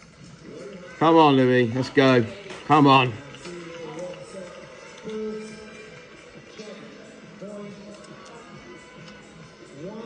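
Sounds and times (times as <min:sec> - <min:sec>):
television music: 0:00.0 - 0:10.0.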